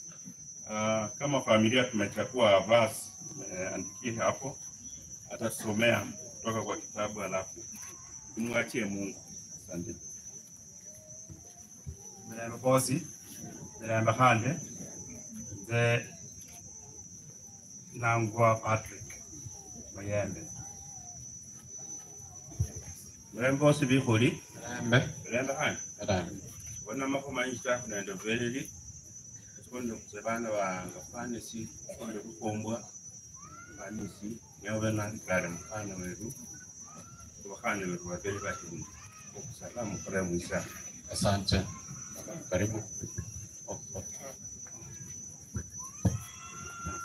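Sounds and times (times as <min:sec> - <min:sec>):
high-pitched insect trill: 0:00.0 - 0:47.0.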